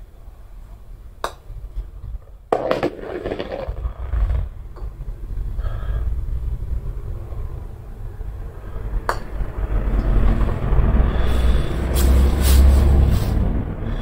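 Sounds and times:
low rumble: 2.6s - 14.0s.

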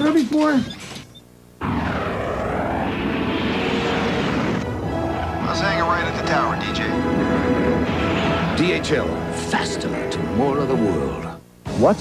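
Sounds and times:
whooshing sweep: 1.6s - 9.5s
aircraft engine drone: 1.6s - 11.3s.

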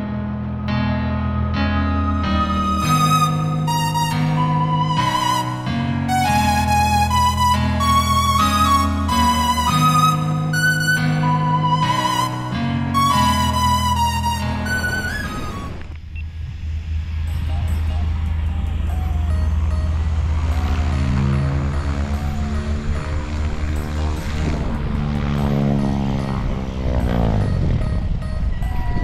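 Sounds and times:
propeller airplane engine: 5.6s - 28.3s.

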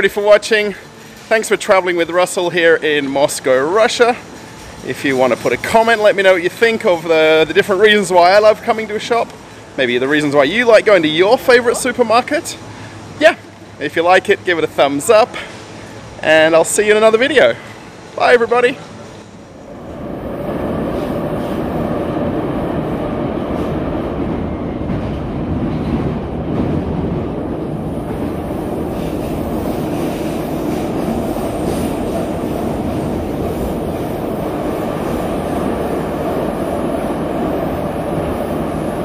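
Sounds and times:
metro train wheels rumbling: 0.0s - 39.0s.

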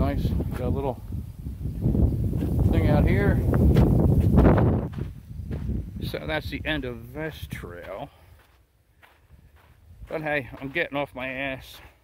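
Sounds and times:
wind and handling rumble: 0.0s - 8.2s
footsteps with light scuffs: 3.6s - 5.9s, 7.4s - 12.0s.

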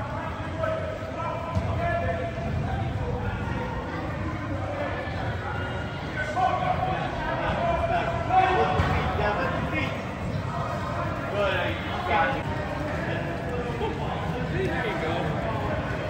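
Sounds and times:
soccer balls thudding on turf: 1.5s - 1.8s, 8.7s - 9.2s.

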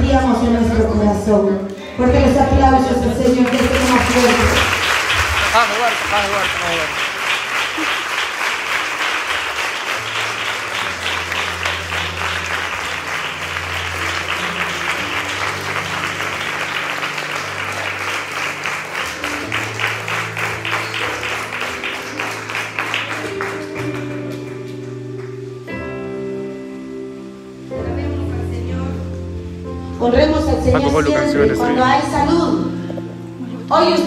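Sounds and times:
congregation clapping: 3.1s - 25.9s.

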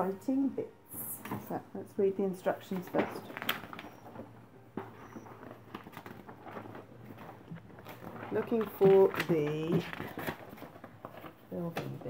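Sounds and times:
packaging rustling and tapping: 2.5s - 12.0s.

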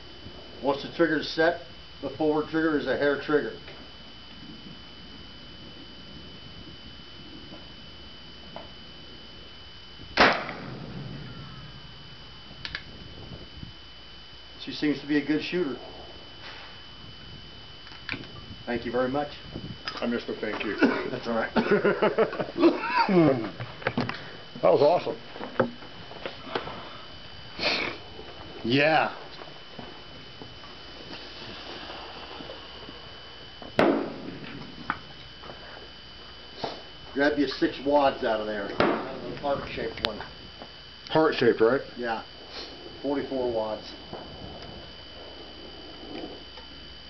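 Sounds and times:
low background noise: 0.0s - 47.0s
rifle shot with ringing tail: 10.2s - 12.3s, 33.8s - 35.0s, 38.8s - 39.8s
faint clicks: 12.6s - 12.9s.

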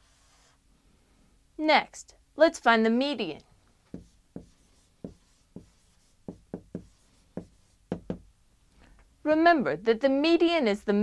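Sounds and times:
marker strokes on whiteboard: 0.0s - 0.6s, 3.8s - 8.2s.

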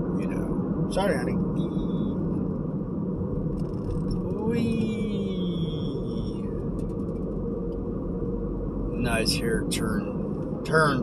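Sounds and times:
road and engine rumble in car: 0.0s - 11.0s
drawn-out vocal eee: 3.7s - 7.2s.

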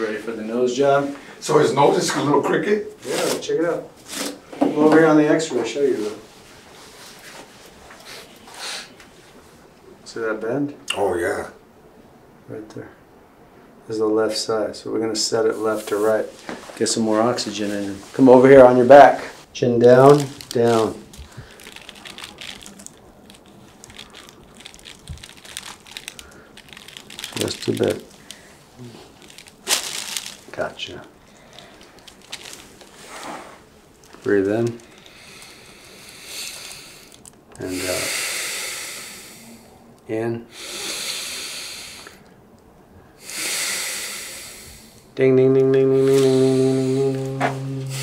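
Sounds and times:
glove crinkling and rustling: 20.0s - 35.0s
person breathing hard through nose: 21.2s - 22.8s, 23.4s - 27.4s, 34.8s - 39.8s, 40.5s - 42.3s, 43.1s - 45.1s, 46.0s - 48.0s.

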